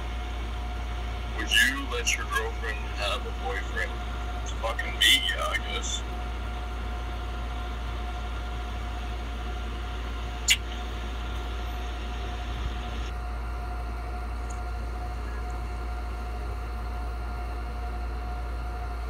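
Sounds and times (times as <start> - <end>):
electrical hum and hiss: 0.0 - 19.0
sharp high-pitched chirp: 10.5 - 10.8.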